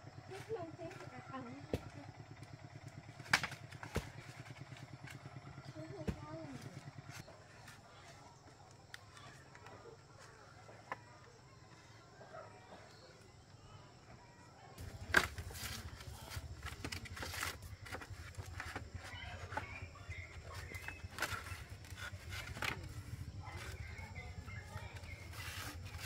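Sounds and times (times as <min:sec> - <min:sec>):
bamboo knocking and clicking: 0:03.2 - 0:04.2.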